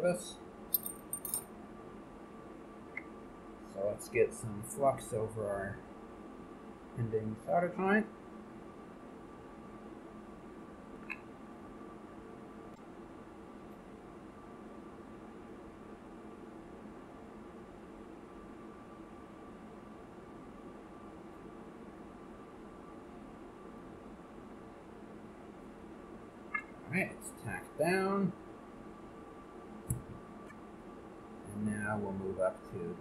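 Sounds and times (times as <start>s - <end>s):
electrical hum with whine: 0.0s - 33.0s
small click: 11.0s - 11.3s.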